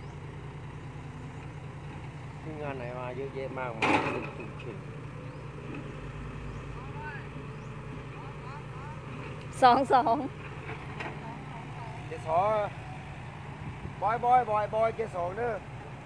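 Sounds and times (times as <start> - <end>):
heavy diesel engines running: 0.0 - 16.0.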